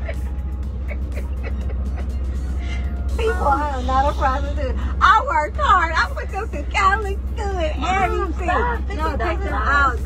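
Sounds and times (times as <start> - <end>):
women laughing: 0.0 - 2.9
car cabin rumble: 0.0 - 10.0.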